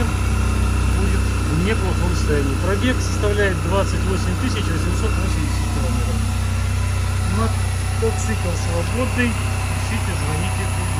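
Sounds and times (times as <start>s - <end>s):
scooter engine idling: 0.0s - 10.9s.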